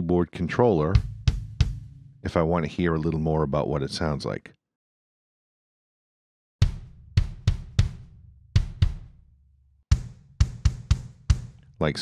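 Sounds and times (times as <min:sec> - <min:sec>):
kick drum hits: 0:01.0 - 0:02.0, 0:06.6 - 0:09.2, 0:09.9 - 0:11.5.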